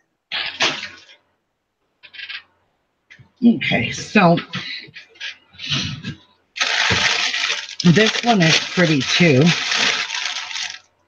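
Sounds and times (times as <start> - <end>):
plastic packaging rustling: 6.6 - 11.0.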